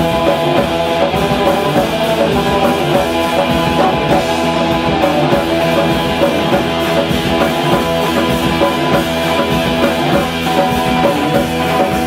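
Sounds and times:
bass guitar: 0:00.0 - 0:12.0
drum kit playing fast beat: 0:00.0 - 0:12.0
loud electric guitars: 0:00.0 - 0:12.0.

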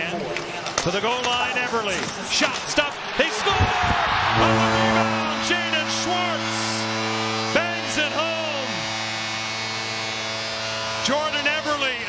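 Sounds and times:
crowd cheering: 0:02.3 - 0:12.0
goal horn low held tone: 0:04.2 - 0:12.0.

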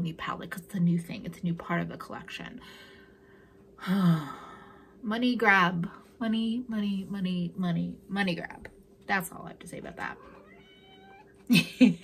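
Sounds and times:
cat meowing: 0:10.2 - 0:11.4
woman laughing: 0:11.4 - 0:12.0.

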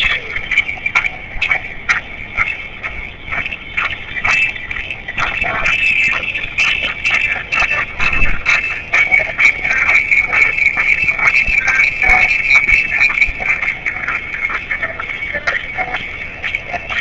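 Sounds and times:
tinny music playback: 0:00.0 - 0:17.0
voices in a busy room: 0:00.0 - 0:17.0.

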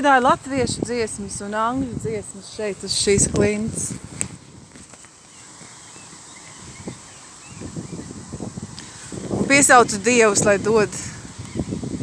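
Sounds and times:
light wind: 0:00.0 - 0:12.0.

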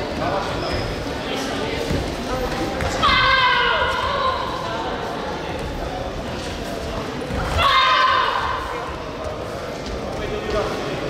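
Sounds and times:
hall chatter: 0:00.0 - 0:11.0.

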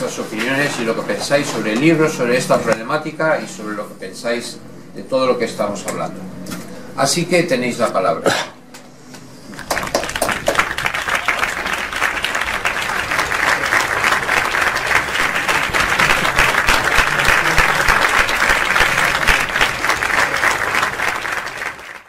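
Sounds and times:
audience applauding: 0:09.5 - 0:22.0.

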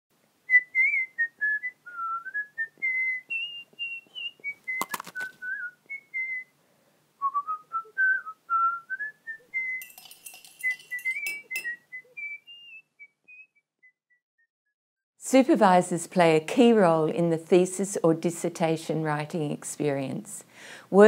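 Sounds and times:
person whistling a tune: 0:00.5 - 0:06.6, 0:07.2 - 0:14.0.

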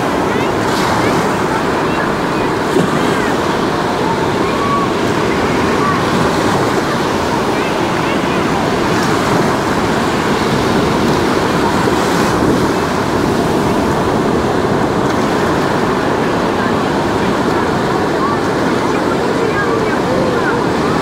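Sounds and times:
small waves breaking on sand: 0:00.0 - 0:21.0.

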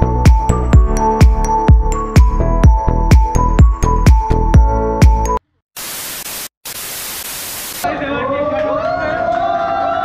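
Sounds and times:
white-noise static hissing: 0:05.8 - 0:07.8.

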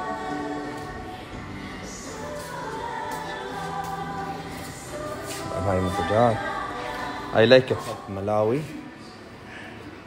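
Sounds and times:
music with choral singing: 0:00.0 - 0:10.0.

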